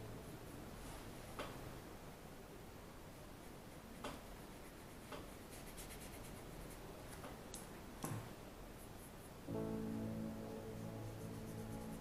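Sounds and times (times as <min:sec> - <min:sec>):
paintbrush strokes on canvas: 0:03.3 - 0:06.9, 0:10.5 - 0:12.0.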